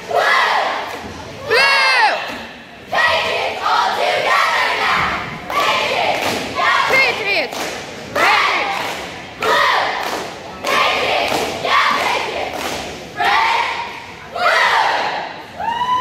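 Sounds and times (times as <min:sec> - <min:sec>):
cheerleaders shouting in unison: 0:00.0 - 0:07.5, 0:08.2 - 0:12.6, 0:13.2 - 0:16.0.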